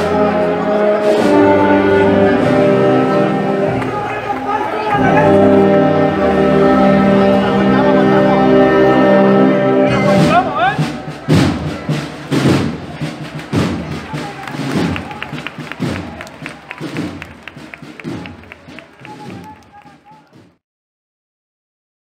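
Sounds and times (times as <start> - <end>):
crowd voices: 0.0 - 20.6
marching drum cadence: 0.0 - 20.6
heavy bass drum strokes: 9.9 - 19.4.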